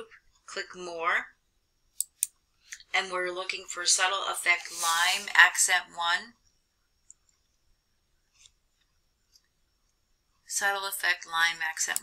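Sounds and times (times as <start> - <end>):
person speaking: 2.7 - 6.4.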